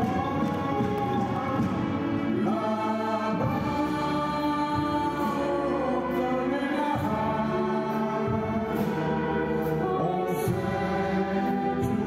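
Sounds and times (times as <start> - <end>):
orchestra playing held chords: 0.0 - 12.0.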